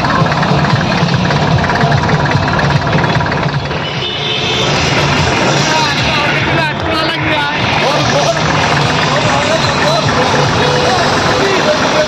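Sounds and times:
crowd talking and shouting: 0.0 - 12.0
tractor engine running: 0.0 - 12.0.

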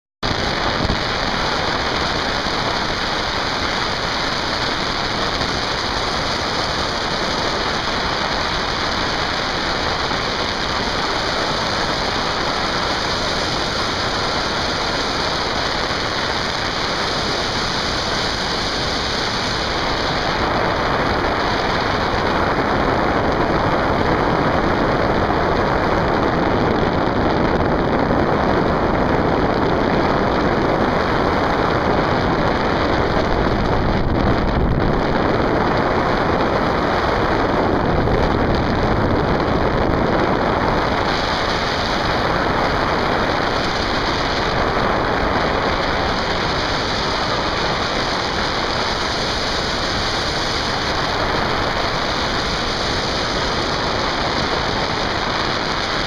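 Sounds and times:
wind rushing on microphone: 0.2 - 56.0.

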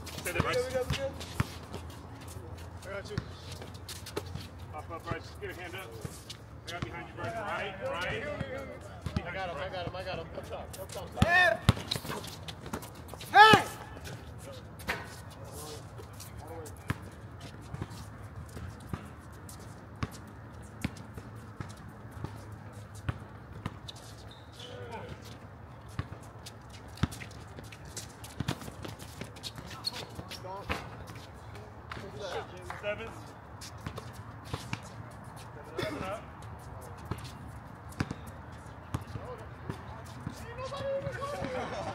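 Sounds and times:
players calling out: 13.1 - 14.7
loud shout: 13.3 - 13.9, 40.6 - 41.8
basketball bouncing on hard court: 37.9 - 38.2.

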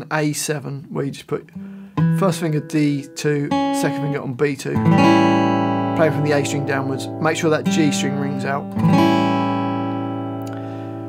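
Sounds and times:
acoustic guitar chord strummed: 1.6 - 11.0.

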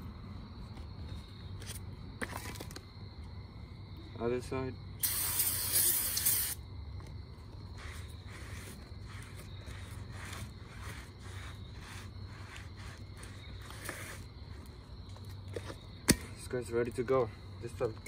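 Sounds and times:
aerosol spray hiss: 5.0 - 6.6.

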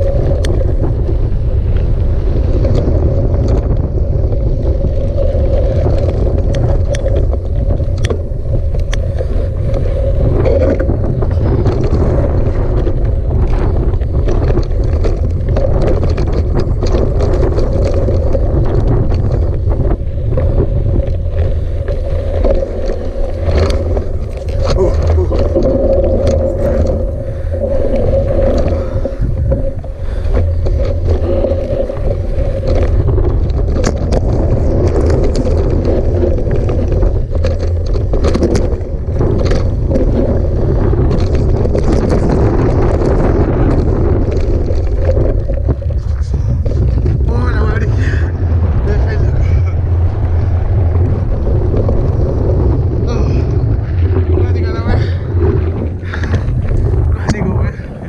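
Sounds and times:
tyres rattling over gravel: 0.0 - 58.0
wind buffeting microphone: 0.0 - 58.0.

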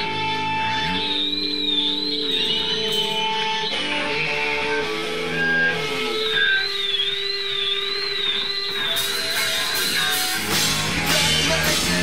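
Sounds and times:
rock band sustained electric tone: 0.0 - 12.0.

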